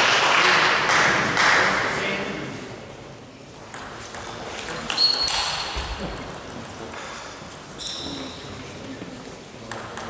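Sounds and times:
shoe squeaking on floor: 4.7s - 6.0s, 7.2s - 8.6s.

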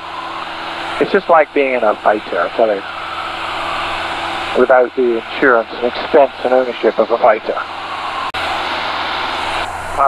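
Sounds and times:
airplane engine and propeller drone: 0.0s - 10.0s
low hum: 0.0s - 10.0s.

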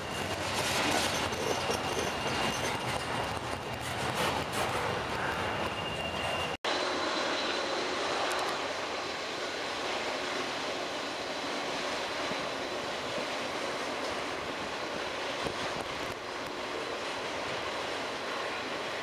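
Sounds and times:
freight train wheels on rails: 0.0s - 19.0s.

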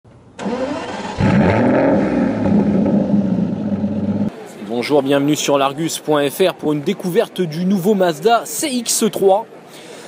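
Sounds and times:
car engine starting and revving: 0.4s - 4.3s.

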